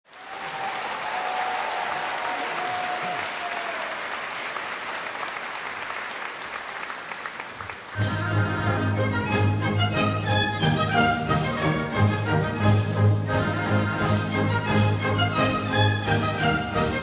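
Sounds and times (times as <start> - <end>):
audience applauding: 0.0 - 8.6.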